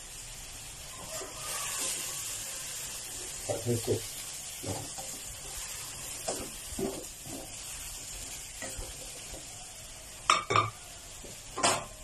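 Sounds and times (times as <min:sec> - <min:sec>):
food sizzling in a pan: 0:00.0 - 0:12.0
spatula scraping through food: 0:01.0 - 0:03.5, 0:04.5 - 0:09.4.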